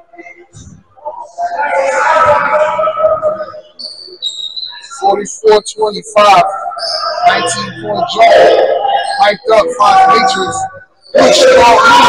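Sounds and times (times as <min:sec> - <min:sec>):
sneakers squeaking on gym floor: 0:02.0 - 0:05.0, 0:06.8 - 0:07.6.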